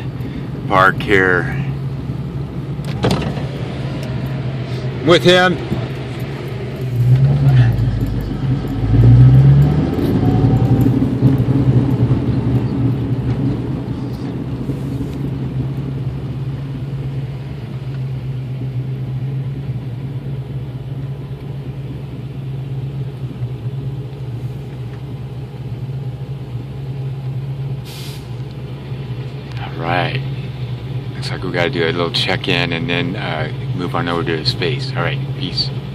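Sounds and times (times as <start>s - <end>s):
car engine and road noise: 0.0s - 35.9s.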